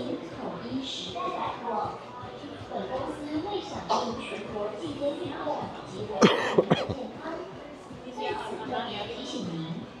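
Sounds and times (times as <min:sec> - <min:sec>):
people talking: 0:00.0 - 0:09.9
person coughing: 0:06.2 - 0:07.0.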